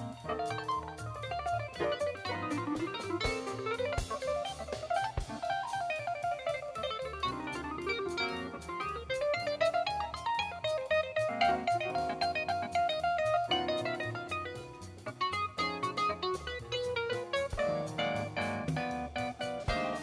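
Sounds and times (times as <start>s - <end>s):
bass: 0.0s - 20.0s
drums: 0.0s - 20.0s
fast jazz lead solo: 0.0s - 20.0s.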